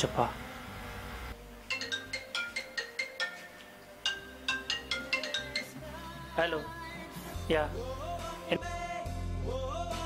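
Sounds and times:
marimba-like phone ringtone: 1.7 - 6.0.

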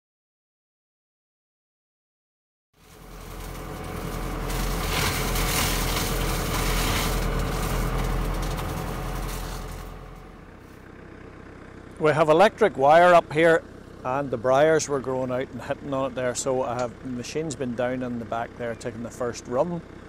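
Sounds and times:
flail head cutting branches: 2.8 - 10.5
tractor engine: 2.8 - 20.0.

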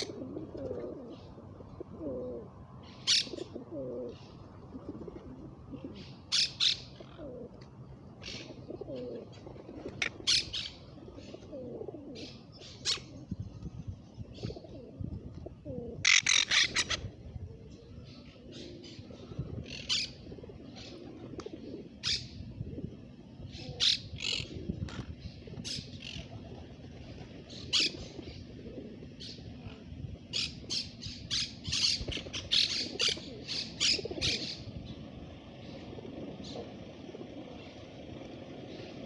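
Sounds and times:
low steady background noise: 0.0 - 39.0
parakeets squawking: 3.0 - 3.4, 10.0 - 10.8, 16.0 - 17.1, 30.3 - 34.7.

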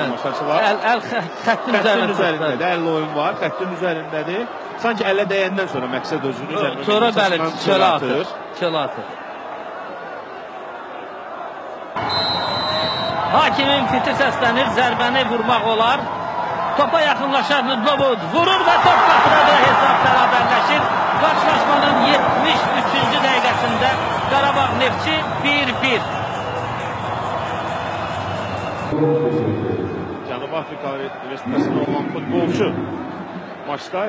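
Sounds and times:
stadium crowd cheering: 0.0 - 34.0
referee's whistle blast: 12.0 - 13.3.

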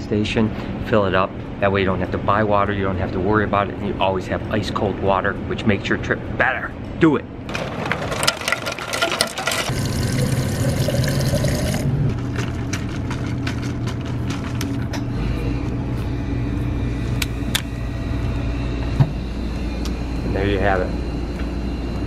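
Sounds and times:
machine hum: 6.2 - 22.0
water pouring into bottle: 8.9 - 13.1.

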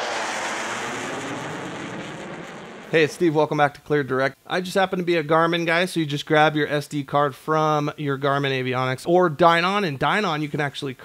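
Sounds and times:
jet flyby: 0.0 - 3.4.

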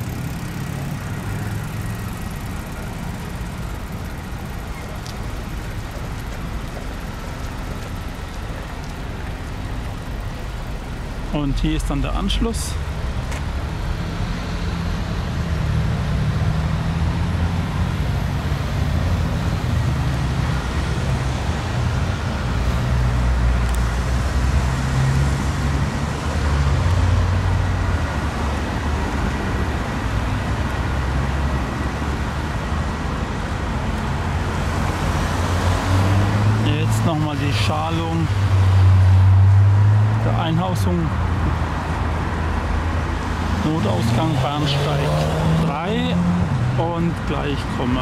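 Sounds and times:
road traffic rumble: 0.0 - 48.0.

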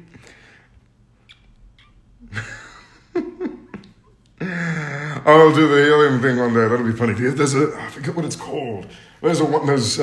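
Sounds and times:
man laughing softly: 2.2 - 5.3
man speaking: 4.9 - 10.0.

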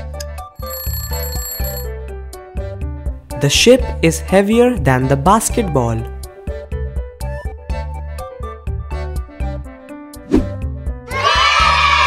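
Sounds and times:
alarm bell ringing: 0.6 - 1.9
background music with bass line: 2.1 - 12.0.

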